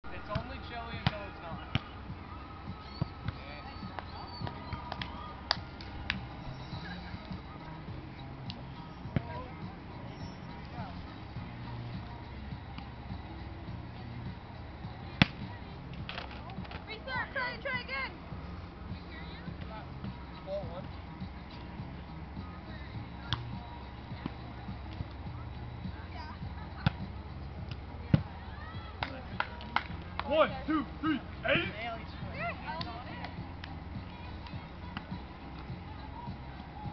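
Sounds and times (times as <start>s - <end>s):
faint players' voices: 0.0s - 36.9s
volleyball slaps by hands: 0.3s - 2.0s, 3.2s - 6.3s, 8.4s - 8.6s, 15.2s - 16.8s, 23.2s - 23.6s, 29.0s - 30.3s, 32.7s - 33.8s.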